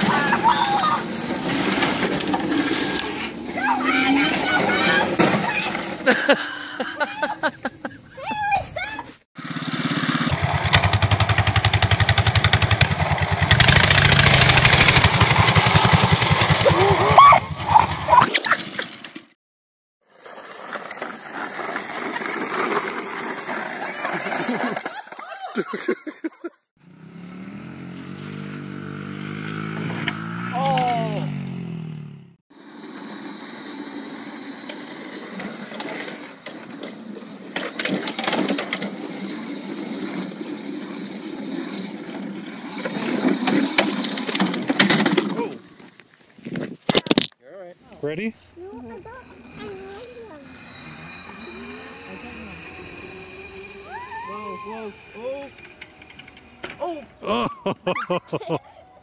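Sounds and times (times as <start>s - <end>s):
voices: 0.0s - 1.2s, 3.4s - 9.2s, 30.5s - 31.3s, 47.4s - 59.0s
small gas engine running: 0.0s - 7.2s, 9.4s - 18.2s, 20.0s - 25.2s, 26.8s - 45.4s, 48.4s - 57.4s.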